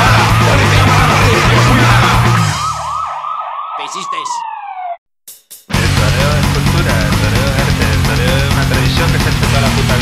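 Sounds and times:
loud punk band: 0.0s - 2.7s, 5.7s - 10.0s
police siren yelping: 0.0s - 5.0s.

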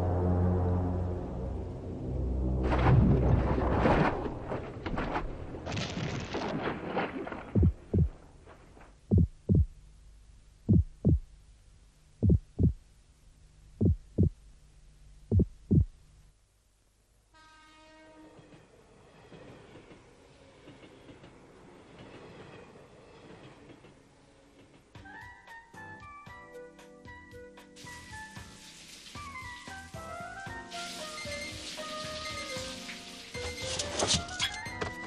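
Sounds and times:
low steady hum: 0.0s - 17.3s
heartbeat thumps: 7.5s - 8.2s, 9.0s - 9.8s, 10.6s - 11.4s, 12.2s - 12.9s, 13.7s - 14.5s, 15.2s - 16.0s.

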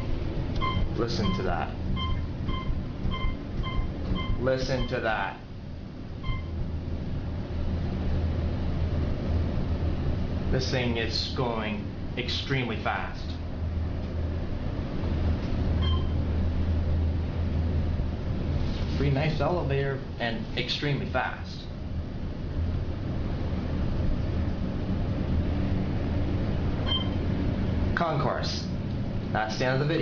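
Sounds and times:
elevator low rumble: 0.0s - 30.0s
short high beeps: 0.6s - 1.4s, 2.0s - 5.0s, 6.2s - 6.5s, 15.8s - 16.2s, 26.9s - 27.2s
brief high beep: 26.9s - 27.2s.

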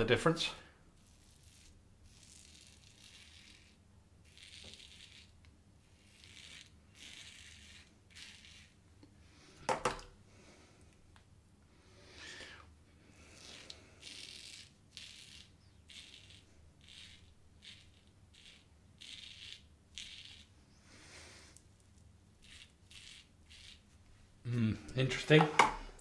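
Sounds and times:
razor scraping stubble: 1.0s - 8.8s, 13.2s - 20.6s, 21.3s - 24.1s.

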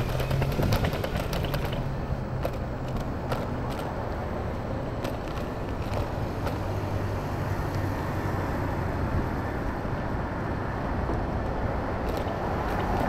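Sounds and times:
wind and road noise: 0.0s - 13.0s.

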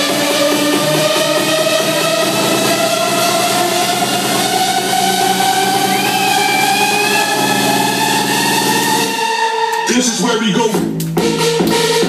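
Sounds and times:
electro house music over club speakers: 0.0s - 12.0s
siren-like synth tone rising: 2.6s - 10.1s.

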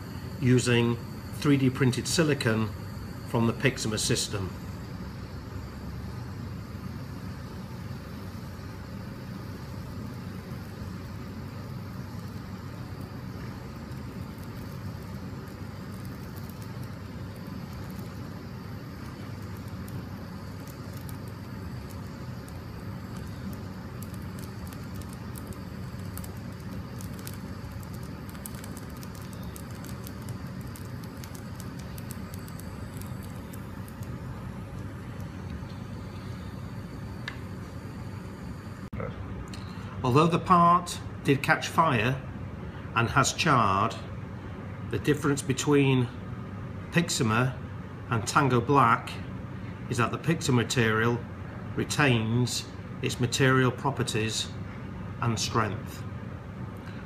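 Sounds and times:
gas torch flame rushing: 0.0s - 38.9s
faint crackles of burning: 0.0s - 57.0s.

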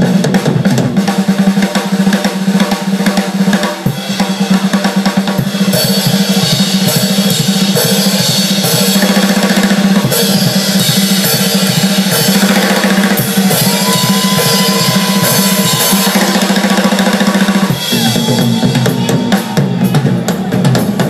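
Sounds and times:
blues band playing: 0.0s - 21.0s
drum kit: 0.0s - 21.0s
long high held note: 13.6s - 17.0s.

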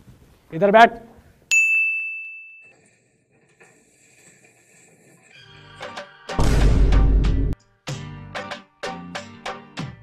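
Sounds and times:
bell-like ding: 1.5s - 2.8s.

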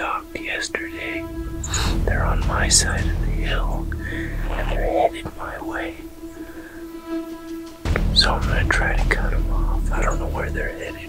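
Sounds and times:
man whispering: 0.0s - 6.1s, 7.9s - 11.0s
soft background music: 0.0s - 11.0s.

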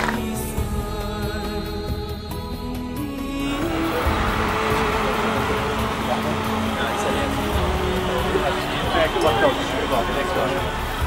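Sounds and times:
background music: 0.0s - 11.0s
team shouting together: 3.6s - 11.0s.

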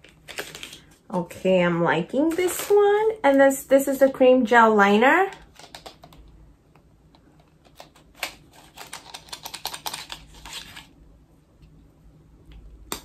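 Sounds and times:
cardboard packaging clicks and crinkles: 0.0s - 1.0s, 7.4s - 11.0s.

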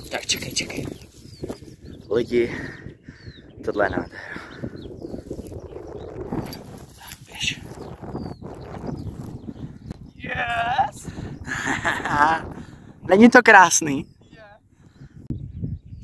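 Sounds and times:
footsteps through dry grass: 0.6s - 1.8s, 5.0s - 5.7s, 6.3s - 9.6s
person's voice: 10.2s - 11.1s.

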